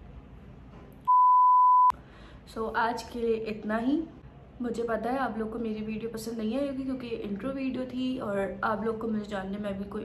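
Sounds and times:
censor bleep tone: 0:01.1 - 0:02.0.

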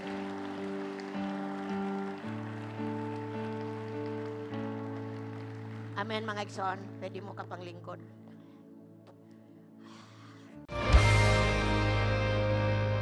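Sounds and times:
light clapping: 0:00.0 - 0:06.2.

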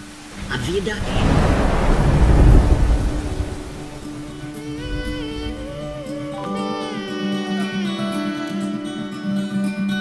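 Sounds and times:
thunder rumbling: 0:00.0 - 0:06.4
rain: 0:00.0 - 0:06.6.

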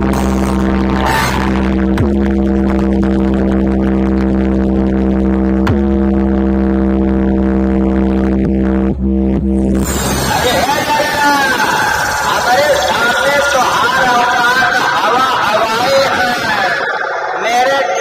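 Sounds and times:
droning bass note: 0:00.0 - 0:13.7.

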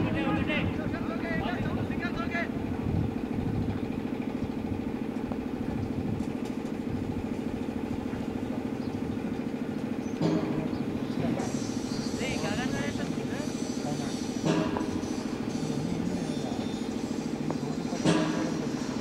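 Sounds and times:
steady engine drone: 0:00.0 - 0:19.0
voices calling out: 0:07.4 - 0:19.0.

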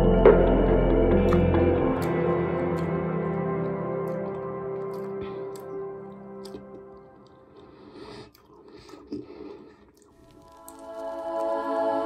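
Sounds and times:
soft ambient music: 0:00.0 - 0:08.2, 0:10.2 - 0:12.0
wet chewing: 0:02.0 - 0:11.7.

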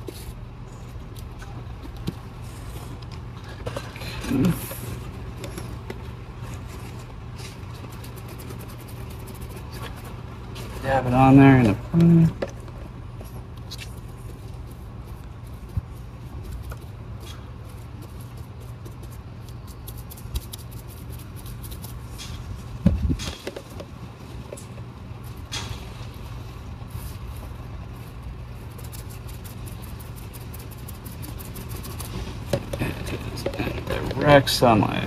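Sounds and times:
brush dabbing on fiberglass mat: 0:06.4 - 0:11.7, 0:13.3 - 0:22.7, 0:26.8 - 0:34.9.

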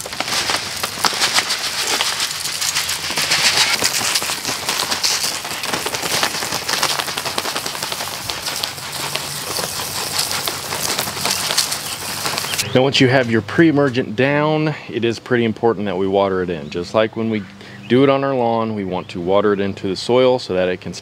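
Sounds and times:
footsteps crunching through mulch: 0:00.0 - 0:14.0
granules pattering onto mulch: 0:00.0 - 0:14.4.

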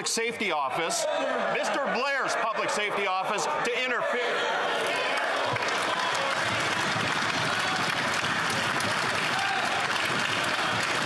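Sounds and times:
people applauding: 0:04.7 - 0:11.0.

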